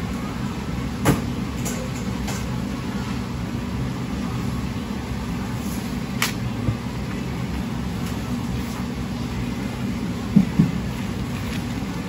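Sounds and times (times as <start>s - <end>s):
kitchen ventilation hum: 0.0s - 12.0s.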